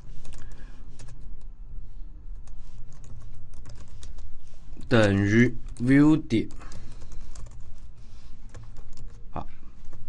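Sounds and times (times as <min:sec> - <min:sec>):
typing on computer keyboard: 0:00.2 - 0:01.2, 0:02.4 - 0:04.9, 0:06.5 - 0:07.7, 0:08.5 - 0:09.2.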